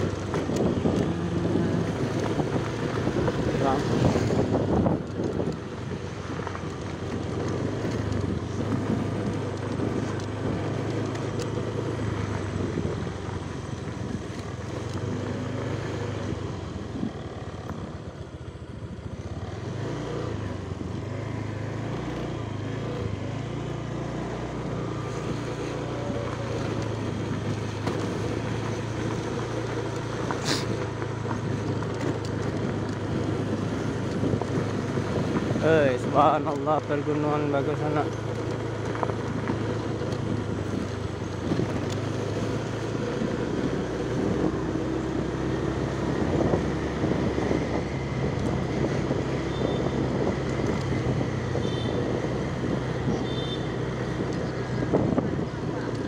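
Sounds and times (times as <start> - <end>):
wind rush: 0.0 - 6.3
motorcycle engine running: 0.0 - 56.0
road noise: 0.0 - 56.0.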